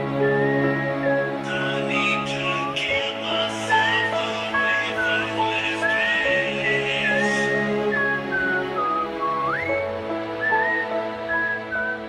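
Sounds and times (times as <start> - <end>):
slow piano chords: 0.0 - 12.0
whistled melody: 0.0 - 12.0.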